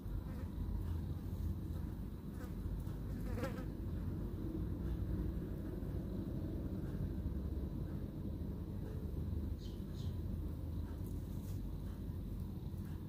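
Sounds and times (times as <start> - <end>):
low buzzing hum: 0.0 - 13.0.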